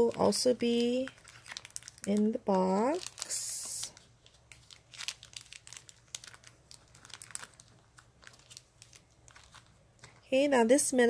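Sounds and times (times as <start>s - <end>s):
plastic bag crinkling: 0.0s - 10.3s.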